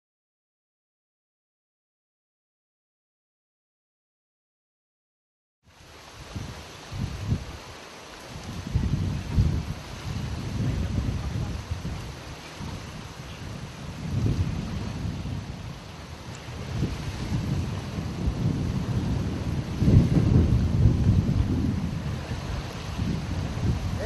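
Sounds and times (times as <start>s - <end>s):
wind buffeting microphone: 5.8s - 24.0s.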